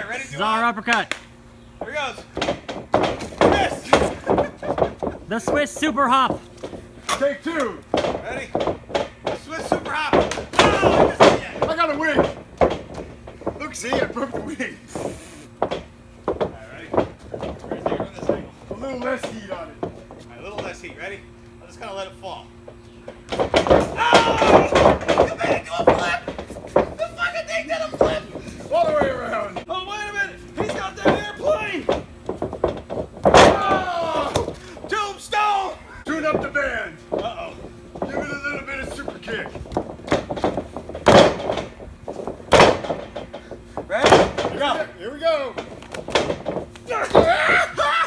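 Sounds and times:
sharp thumps and slaps: 0.9s - 20.8s, 22.7s - 27.0s, 30.6s - 34.9s, 36.2s - 44.7s, 45.6s - 47.7s
men laughing and shouting: 3.4s - 6.3s, 23.8s - 30.1s, 33.5s - 36.3s, 46.8s - 48.0s
people laughing: 3.9s - 5.4s
heavy thuds on wrestling mat: 39.4s - 43.3s.

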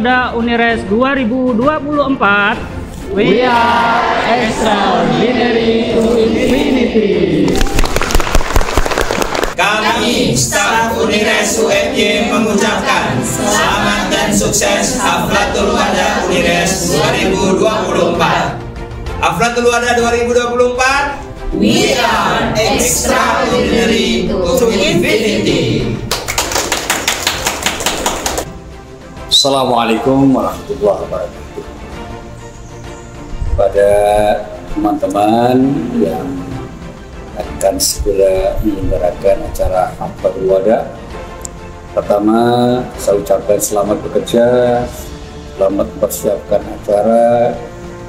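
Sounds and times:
group shouting a chant: 3.1s - 7.6s, 9.6s - 18.6s, 21.5s - 26.0s
crowd applauding: 7.4s - 9.8s, 26.1s - 28.5s
people clapping: 7.4s - 11.0s, 26.0s - 28.6s.

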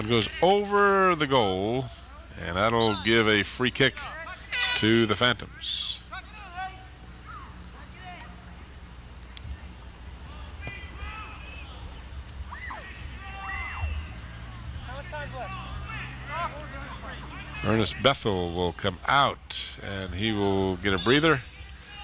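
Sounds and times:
distant players shouting: 0.0s - 8.8s, 10.1s - 22.0s
low steady hum: 0.0s - 22.0s.

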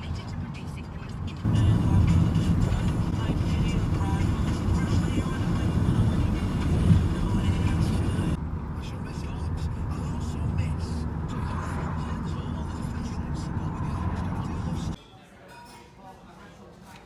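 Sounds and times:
car road and wind noise: 0.0s - 15.0s.

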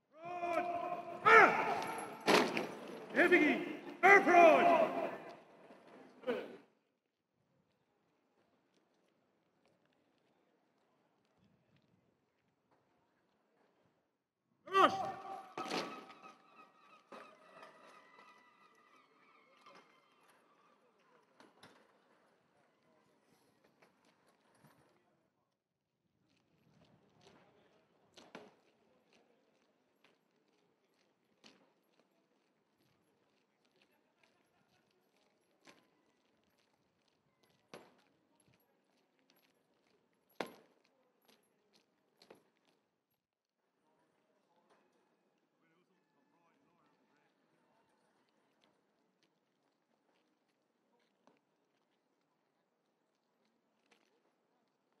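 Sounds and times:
echo of shouted command: 0.2s - 5.4s, 14.7s - 16.1s.

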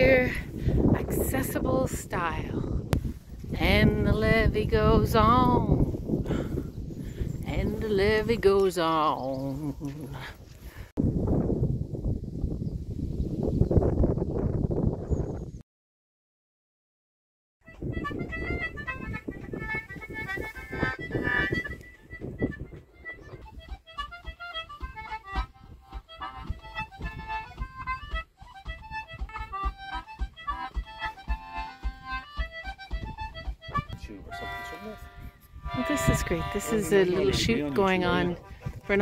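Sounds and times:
concertina playing lively tune: 17.7s - 39.0s.

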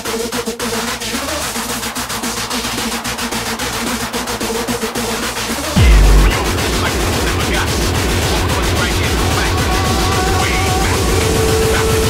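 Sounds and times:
electronic hardcore music: 5.8s - 6.8s.

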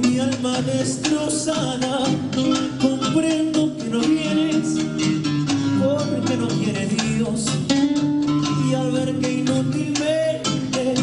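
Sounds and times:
man singing into microphone: 0.0s - 11.0s
rhythmic backing music: 0.0s - 11.0s.

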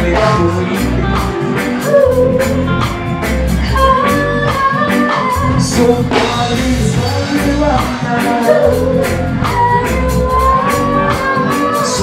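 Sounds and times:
man singing: 0.0s - 2.7s, 5.1s - 12.0s
reggae band playing: 0.0s - 12.0s.

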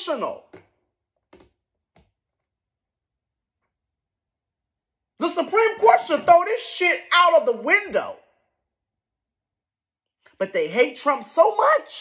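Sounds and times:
man speaking: 5.2s - 8.2s.

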